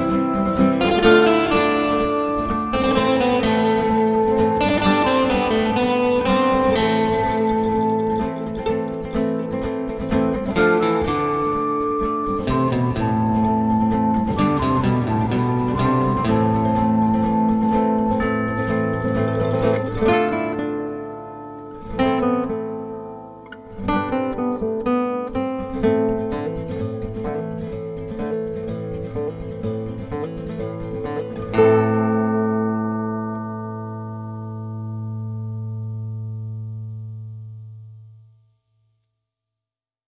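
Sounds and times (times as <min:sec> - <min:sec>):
plucked string music: 0:00.0 - 0:38.3.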